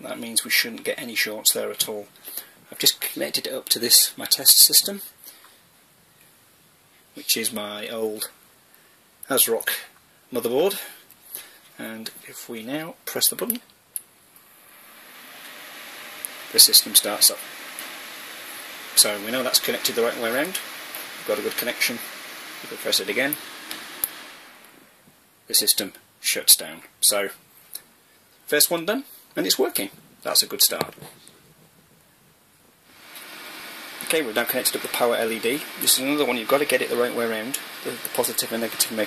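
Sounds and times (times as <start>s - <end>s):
steady hiss: 0.0s - 39.0s
computer fans whirring: 14.4s - 25.2s, 32.8s - 39.0s.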